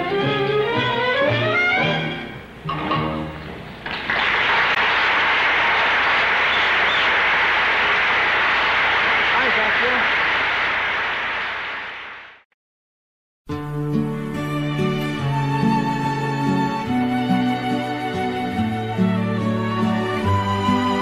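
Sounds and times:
orchestra playing: 0:00.0 - 0:03.5, 0:13.9 - 0:21.0
audience applause: 0:03.8 - 0:12.4.

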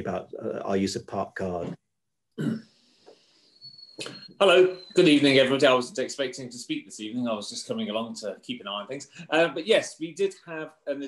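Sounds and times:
man coughing: 0:02.4 - 0:02.6.

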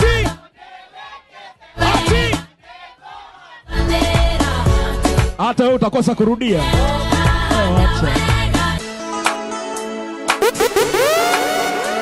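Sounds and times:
dance music mix: 0:10.4 - 0:12.0.

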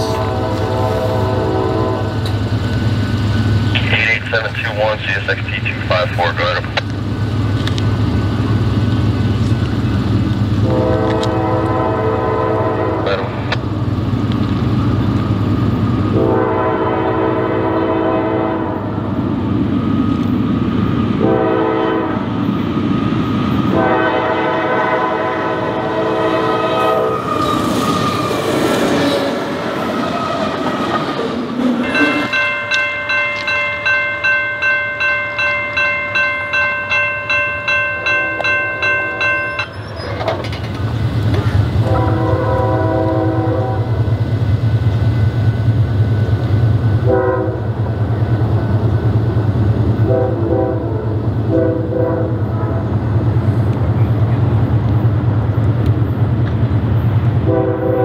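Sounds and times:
locomotive air horn blasts: 0:00.0 - 0:02.3, 0:10.6 - 0:13.4, 0:16.1 - 0:18.9, 0:21.2 - 0:22.2, 0:23.7 - 0:27.2, 0:41.8 - 0:44.0, 0:47.0 - 0:47.7, 0:50.0 - 0:52.8, 0:57.4 - 0:58.0
bell ringing: 0:31.8 - 0:40.2.

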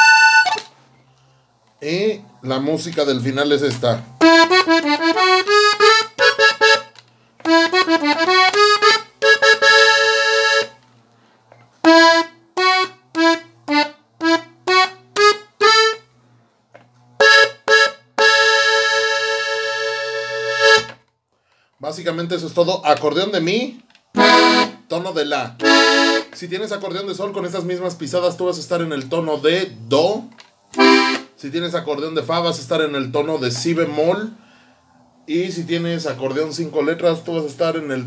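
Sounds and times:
button accordion playing: 0:00.0 - 0:00.8, 0:02.4 - 0:11.0, 0:11.8 - 0:16.3, 0:17.1 - 0:21.0, 0:24.1 - 0:26.5, 0:30.7 - 0:31.4.

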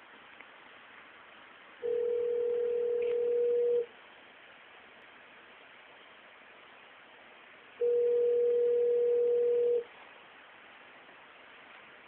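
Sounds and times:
telephone ringback tone: 0:01.8 - 0:03.9, 0:07.8 - 0:09.9.

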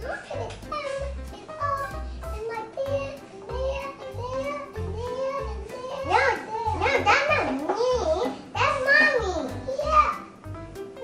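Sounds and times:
girl talking in high voice: 0:00.0 - 0:10.3.

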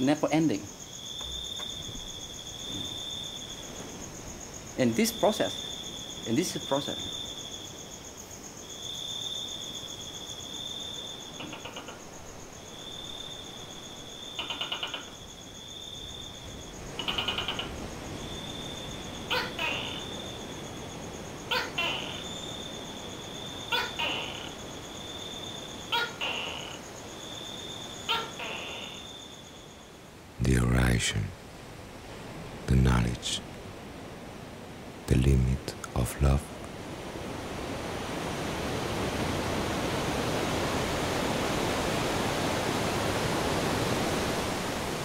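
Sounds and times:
insects trilling: 0:00.0 - 0:45.0
sharp short animal calls: 0:17.0 - 0:17.8, 0:19.3 - 0:20.1, 0:21.5 - 0:22.3, 0:25.9 - 0:26.8, 0:28.1 - 0:29.0.

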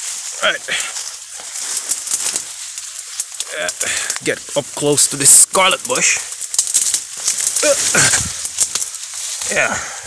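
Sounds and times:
leaves and twigs rustling: 0:00.0 - 0:10.0.

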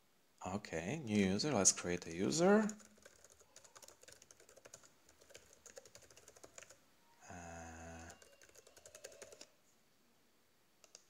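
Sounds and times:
faint keyboard typing: 0:01.2 - 0:06.8, 0:07.8 - 0:09.6, 0:10.8 - 0:11.0.

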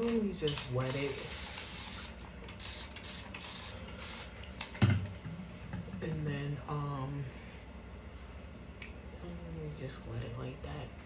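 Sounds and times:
spray bottle spritzing: 0:00.5 - 0:04.3.

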